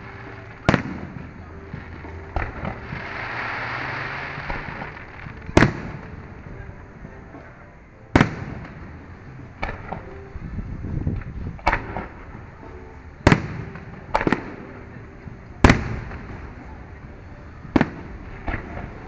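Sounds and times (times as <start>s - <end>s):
firework shells bursting: 0.0s - 6.2s.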